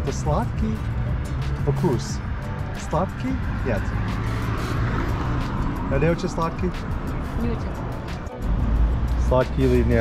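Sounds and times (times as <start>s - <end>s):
street traffic hum: 0.0s - 10.0s
car passing close by: 3.1s - 10.0s.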